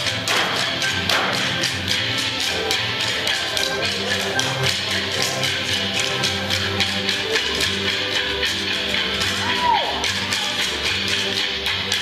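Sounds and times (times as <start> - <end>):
music: 0.0 - 12.0
wooden sticks clacking: 0.0 - 12.0.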